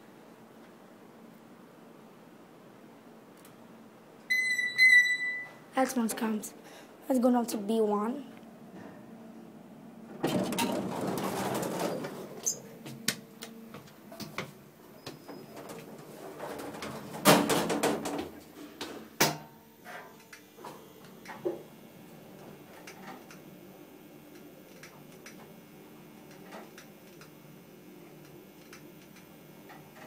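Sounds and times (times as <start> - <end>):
elevator low hum: 0.0 - 17.2.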